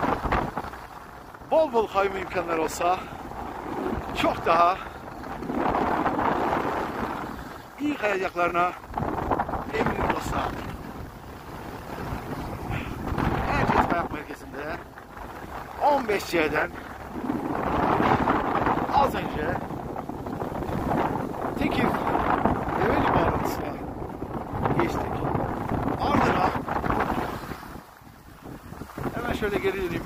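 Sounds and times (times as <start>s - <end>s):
wind on microphone: 0.0s - 30.0s.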